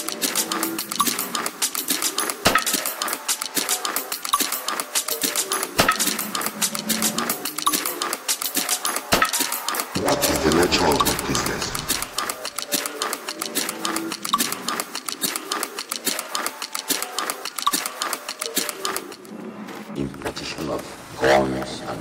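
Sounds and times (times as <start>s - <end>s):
electronic music: 0.0s - 19.2s
clicking percussion: 0.0s - 19.3s.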